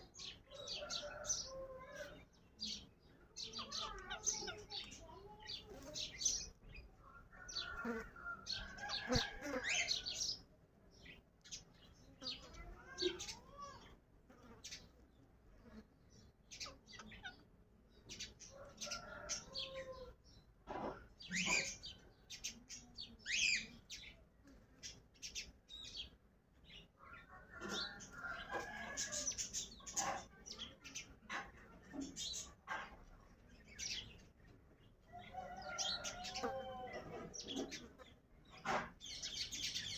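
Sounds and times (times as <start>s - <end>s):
soft wavering parakeet chatter: 0.0s - 10.4s, 16.5s - 20.1s, 20.7s - 24.1s, 27.1s - 34.2s
parakeets chirping and squawking: 20.8s - 22.0s.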